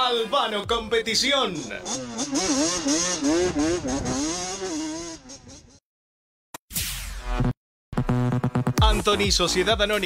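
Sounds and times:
kart engine revving: 0:01.6 - 0:05.8.

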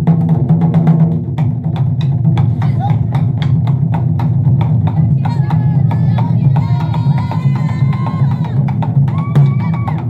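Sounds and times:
deep drum rumble: 0:00.0 - 0:10.0.

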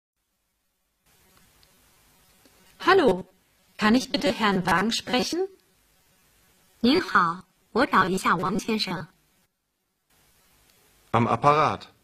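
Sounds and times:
faint hiss: 0:00.2 - 0:12.0.

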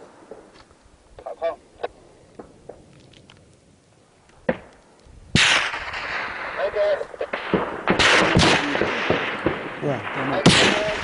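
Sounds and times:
distant gunfire cracks: 0:04.4 - 0:11.0.

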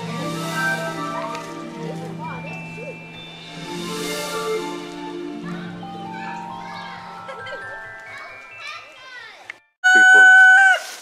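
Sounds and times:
music: 0:00.0 - 0:09.8.

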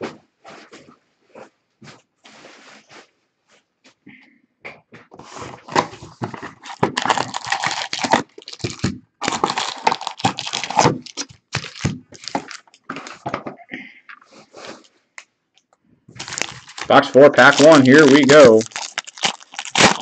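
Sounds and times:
wrapper crinkling and rustling: 0:05.6 - 0:13.3, 0:16.2 - 0:20.0.

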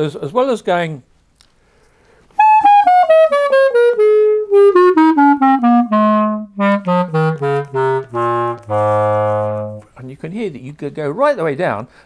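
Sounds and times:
clarinet descending run: 0:02.4 - 0:10.0.

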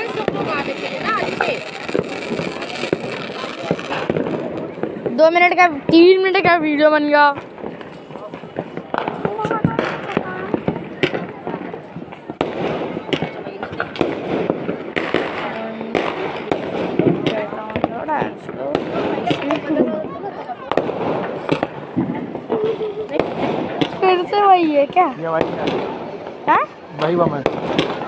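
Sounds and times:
people talking: 0:00.0 - 0:07.4, 0:08.1 - 0:14.0, 0:17.1 - 0:21.6
firecrackers cracking and popping: 0:00.0 - 0:28.0.

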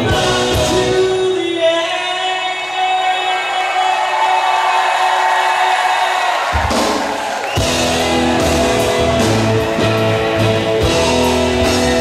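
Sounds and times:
live pop-rock band: 0:00.0 - 0:03.6, 0:05.6 - 0:12.0.

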